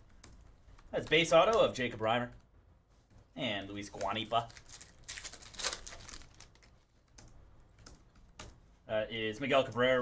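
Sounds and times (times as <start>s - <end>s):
foil pack rustling: 4.0s - 6.7s.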